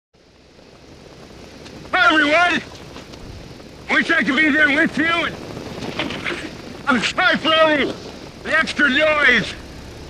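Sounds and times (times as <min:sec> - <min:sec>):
biplane engine: 0:00.2 - 0:10.0
wind rushing: 0:00.4 - 0:08.6
man calling out: 0:01.9 - 0:02.7, 0:03.9 - 0:05.3, 0:06.1 - 0:09.7.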